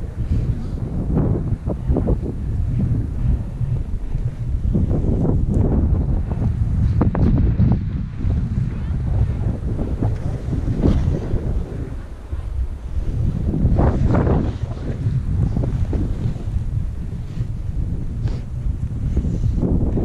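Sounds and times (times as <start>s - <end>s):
wind buffeting microphone: 0.0s - 20.0s
skis scraping over snow: 6.8s - 19.8s.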